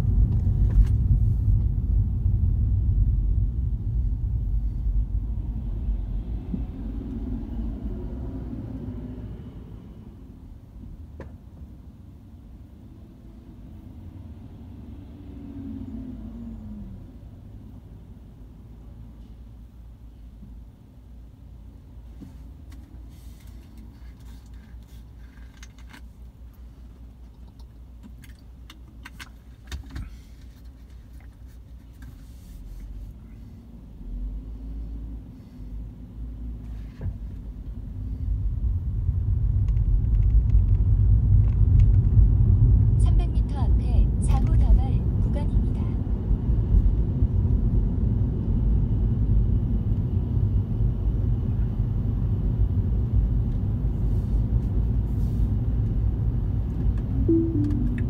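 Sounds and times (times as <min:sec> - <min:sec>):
road and tyre rumble: 0:00.0 - 0:58.0.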